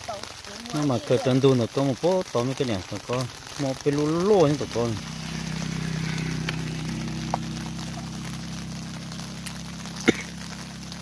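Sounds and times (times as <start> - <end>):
rain hiss: 0.0 - 11.0
low steady drone: 3.2 - 11.0.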